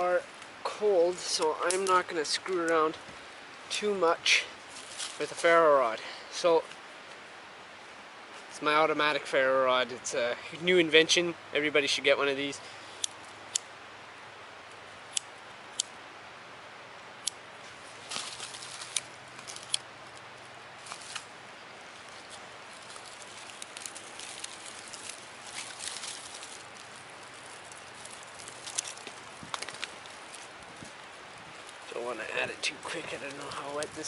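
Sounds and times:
bark crackling as it burns: 0:00.0 - 0:08.4, 0:11.9 - 0:34.0
dry twigs rustling and snapping: 0:00.2 - 0:03.2, 0:04.7 - 0:05.5, 0:18.0 - 0:34.0.

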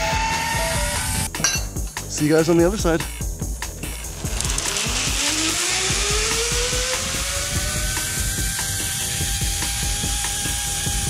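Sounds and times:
zip line pulleys whining: 0:00.0 - 0:01.3, 0:03.6 - 0:11.0.

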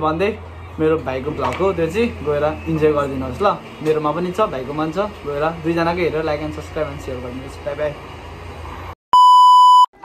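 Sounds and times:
electronic beep: 0:09.2 - 0:09.9.

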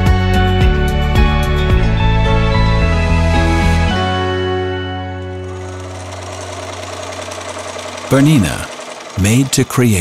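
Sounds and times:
sewing machine running: 0:05.0 - 0:10.0.

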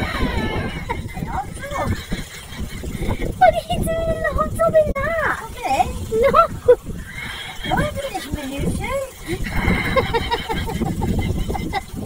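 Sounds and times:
person laughing: 0:00.0 - 0:03.4, 0:09.1 - 0:12.0.

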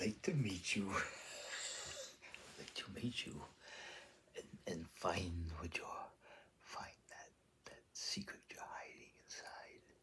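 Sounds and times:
man whispering: 0:00.0 - 0:03.7, 0:04.3 - 0:10.0.

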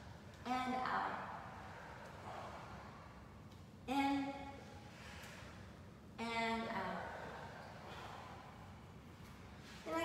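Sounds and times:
faint breathing: 0:01.2 - 0:03.6, 0:04.7 - 0:05.9, 0:06.7 - 0:09.9.

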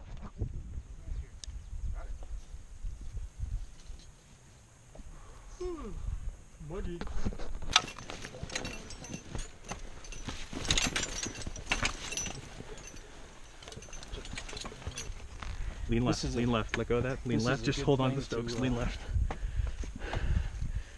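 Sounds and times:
climbing hardware clicking: 0:07.7 - 0:15.7.

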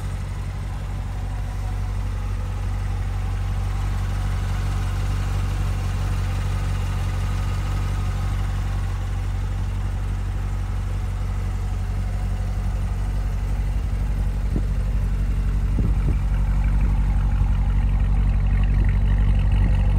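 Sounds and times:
car engine idling: 0:00.0 - 0:19.9.

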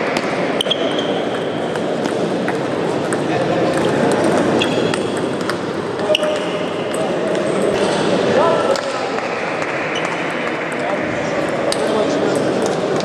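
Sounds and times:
table tennis ball clicking: 0:01.8 - 0:05.6.

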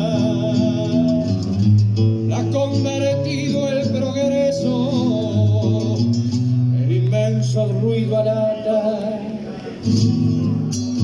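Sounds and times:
acoustic guitar plucked: 0:00.0 - 0:11.0.

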